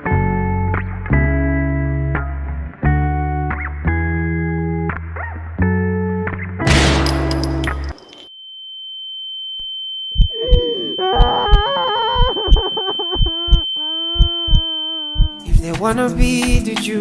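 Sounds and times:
steady high-pitched tone: 8.9 - 16.4.

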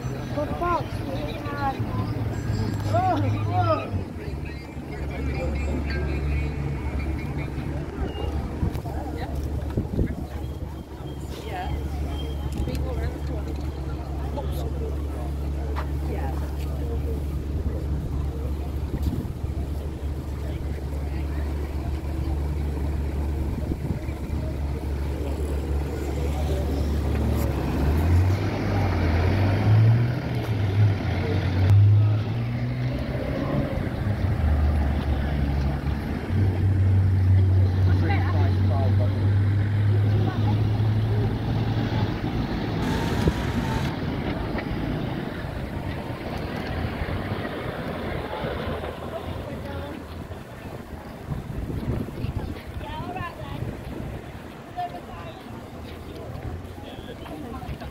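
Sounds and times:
diesel engine idling and driving off: 0.0 - 57.9
people talking: 0.0 - 57.9.

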